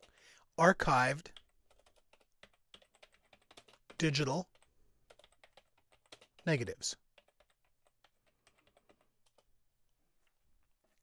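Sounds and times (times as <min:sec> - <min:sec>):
faint keyboard typing: 0:00.0 - 0:00.4, 0:01.2 - 0:11.0.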